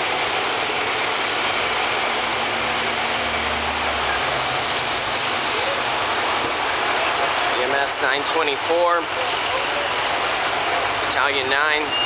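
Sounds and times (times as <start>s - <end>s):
street traffic: 0.0s - 12.0s
vehicle engines driving past: 1.5s - 8.3s.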